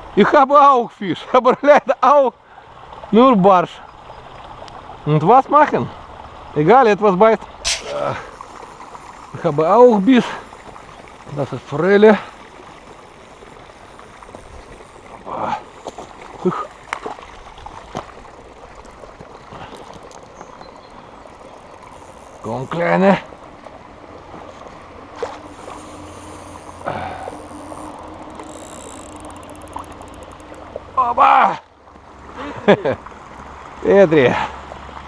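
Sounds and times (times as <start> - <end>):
faint outdoor hiss: 0.0 - 35.0
fish splashing in water: 7.7 - 22.6, 23.2 - 31.0.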